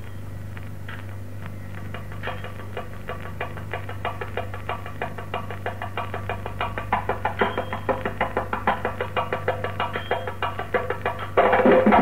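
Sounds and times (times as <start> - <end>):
steady low hum: 0.0 - 12.0
drum playing brisk rhythm: 1.8 - 12.0.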